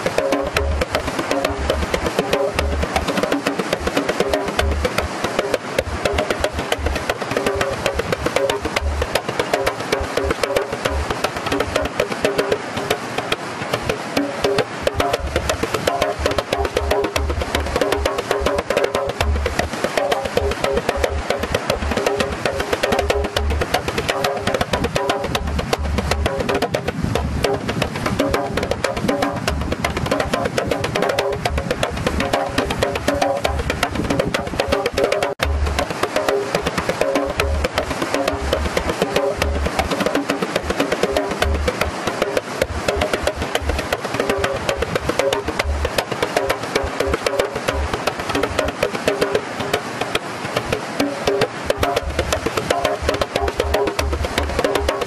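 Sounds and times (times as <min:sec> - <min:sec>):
hand drum slaps and bass thumps: 0:00.0 - 0:55.0.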